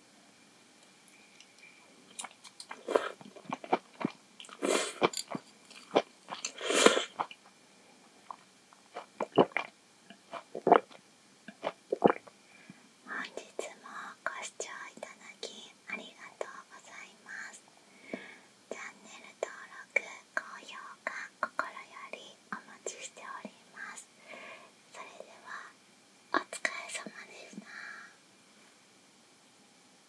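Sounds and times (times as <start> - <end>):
woman whispering: 13.1 - 17.6, 18.7 - 24.1, 25.0 - 25.8, 26.4 - 28.2.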